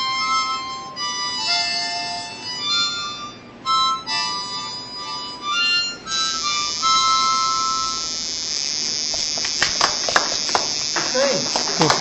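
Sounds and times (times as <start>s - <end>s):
harmonica chord: 0.0s - 9.7s
steady high hiss: 0.0s - 12.0s.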